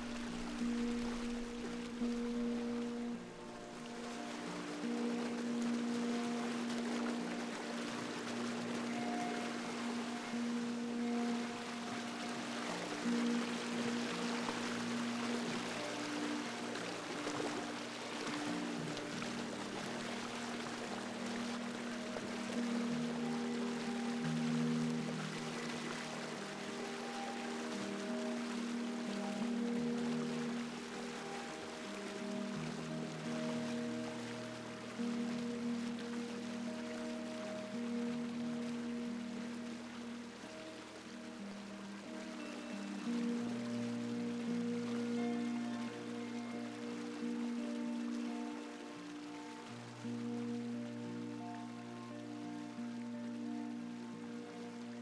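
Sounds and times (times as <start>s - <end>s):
flowing water: 0.0s - 55.0s
slow ambient music: 0.0s - 55.0s.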